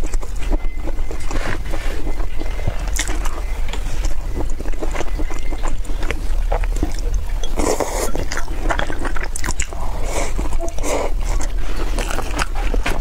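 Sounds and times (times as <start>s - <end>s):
low rumble: 0.0s - 13.0s
wet chewing: 0.0s - 13.0s.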